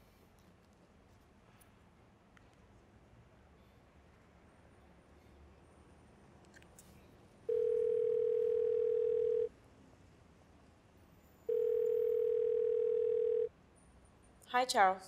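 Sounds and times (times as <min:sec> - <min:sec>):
telephone ringback tone: 0:07.5 - 0:09.5, 0:11.5 - 0:13.5.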